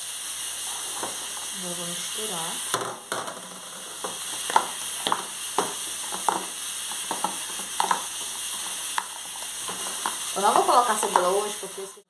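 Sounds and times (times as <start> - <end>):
chicken sizzling in a pan: 0.0 - 12.0
utensil clacking against pan: 2.7 - 11.4.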